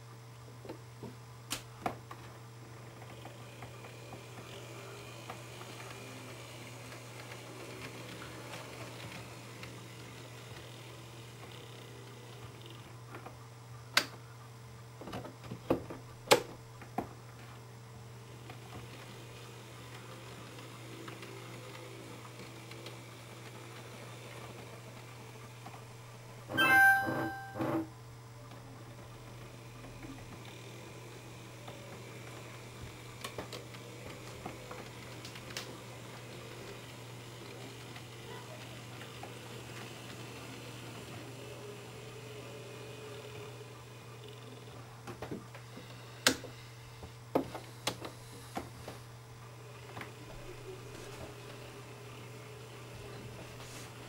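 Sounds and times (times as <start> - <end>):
short loud two-part pitched sound: 26.5 - 27.7.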